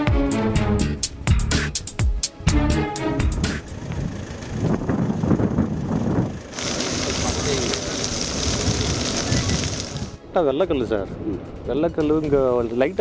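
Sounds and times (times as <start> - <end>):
grass fire hissing: 3.6 - 10.2
wind on microphone: 3.7 - 13.0
faint voices: 6.6 - 10.0.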